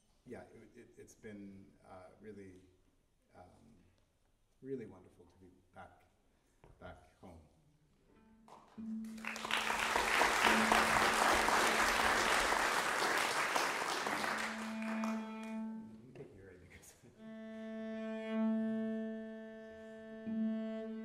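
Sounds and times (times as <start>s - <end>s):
cellos sustained notes: 8.0s - 21.0s
cello holding low note: 8.2s - 16.2s
audience applause: 9.1s - 15.6s.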